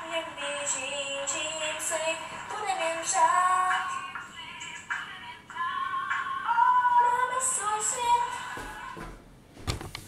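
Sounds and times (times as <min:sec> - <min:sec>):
young girl singing: 0:00.0 - 0:09.0.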